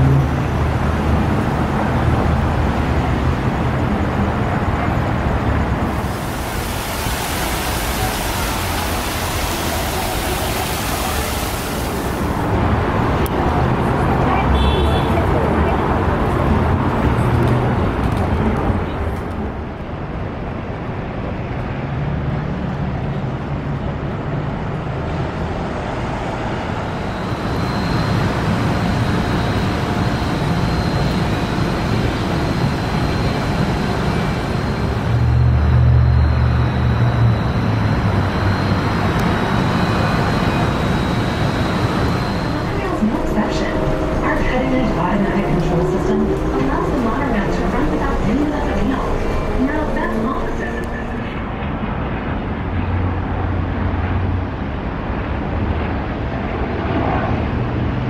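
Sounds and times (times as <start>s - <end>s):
monorail train rumble: 0.0s - 58.0s
high whine: 26.6s - 53.4s
indistinct voices: 40.3s - 51.6s.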